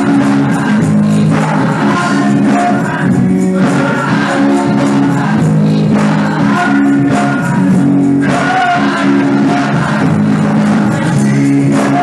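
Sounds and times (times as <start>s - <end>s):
choir singing: 0.0s - 12.0s
instrumental accompaniment: 0.0s - 12.0s
percussion: 0.0s - 12.0s.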